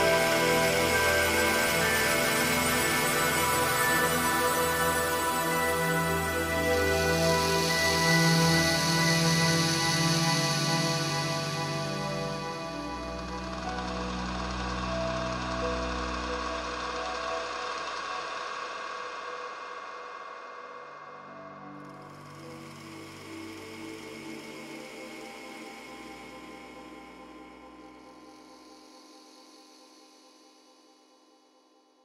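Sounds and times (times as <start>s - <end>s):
synthesizer pad chords: 0.0s - 28.7s.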